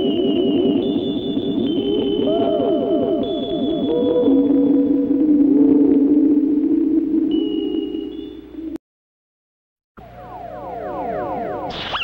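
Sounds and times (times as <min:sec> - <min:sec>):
thin high whistle-like tone: 0:00.0 - 0:04.4, 0:07.3 - 0:08.8, 0:10.6 - 0:12.0
warbling electronic tones: 0:00.0 - 0:08.8, 0:10.0 - 0:12.0.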